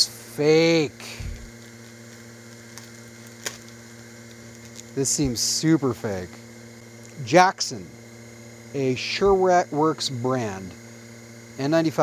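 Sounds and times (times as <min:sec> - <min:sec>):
low electrical hum: 0:00.0 - 0:12.0
plastic bag ticks: 0:01.3 - 0:05.4.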